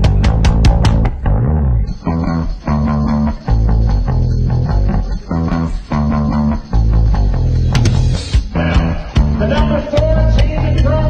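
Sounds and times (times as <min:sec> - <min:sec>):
rock music with bass and guitar: 0:00.0 - 0:11.0.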